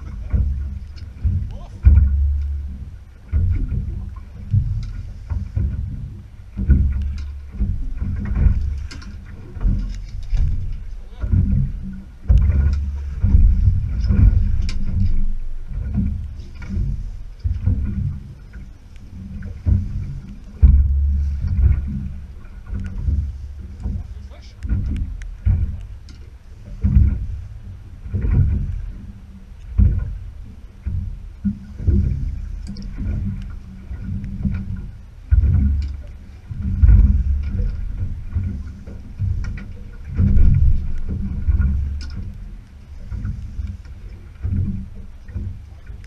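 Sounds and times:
water sloshing against boat hull: 0.0s - 46.0s
wind buffeting microphone: 0.0s - 46.0s.

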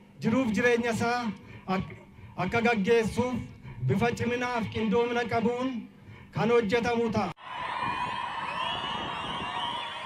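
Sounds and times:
crowd cheering and whooping: 7.4s - 10.0s.

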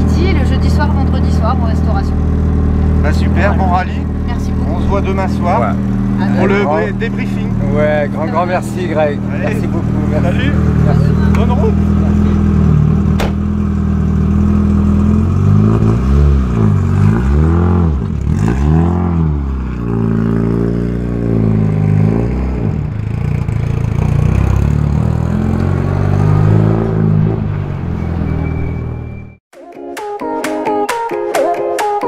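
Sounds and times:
rally car engine revving: 0.0s - 29.1s.

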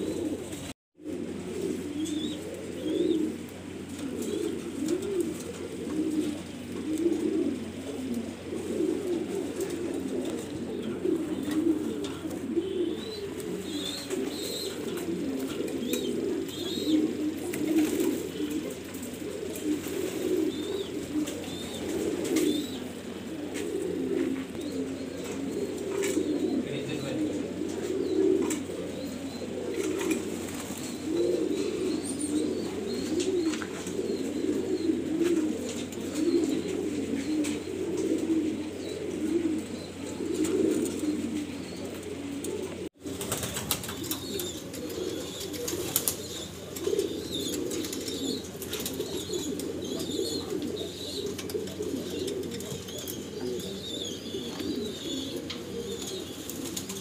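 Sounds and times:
pigeons cooing: 0.0s - 57.0s.

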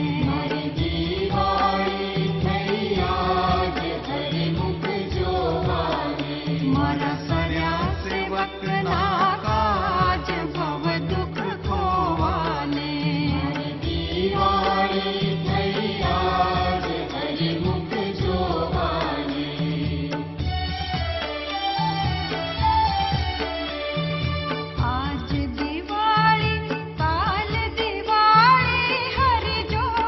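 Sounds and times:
devotional chanting: 0.0s - 21.1s
instrumental accompaniment with beat: 0.0s - 30.0s.

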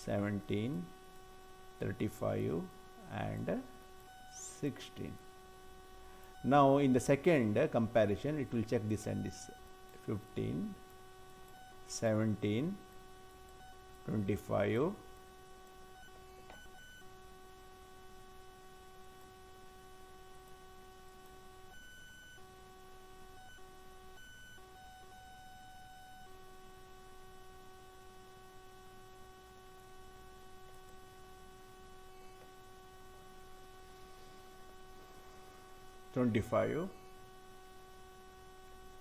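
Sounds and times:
electrical hum with whine: 0.0s - 39.0s.

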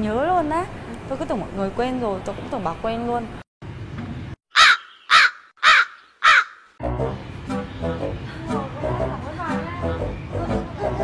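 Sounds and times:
crow cawing: 4.5s - 6.8s.

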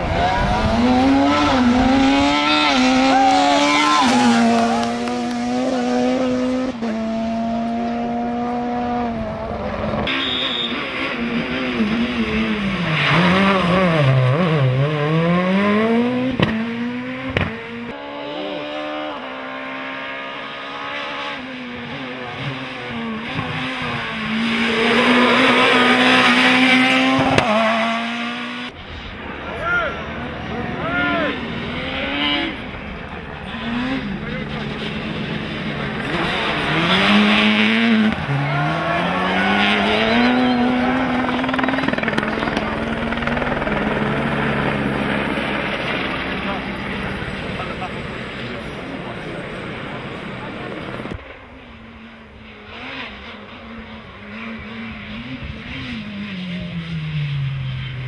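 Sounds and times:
rally car engine accelerating: 0.0s - 28.8s, 30.2s - 58.0s
second rally car accelerating: 0.0s - 58.0s.

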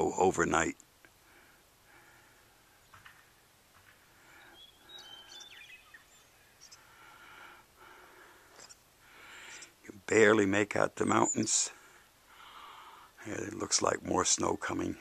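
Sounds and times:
faint outdoor ambience: 0.0s - 15.0s
high bird chirps: 4.4s - 6.8s.

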